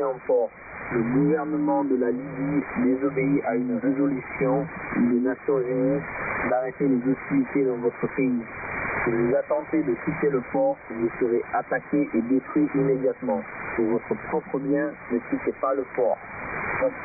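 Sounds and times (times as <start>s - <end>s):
man speaking over radio: 0.0s - 16.2s, 16.8s - 17.0s
radio static hiss: 0.0s - 17.0s.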